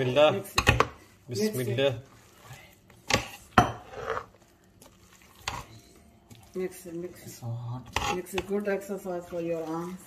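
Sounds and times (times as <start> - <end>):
spoon scraping through thick mix: 0.0 - 10.0.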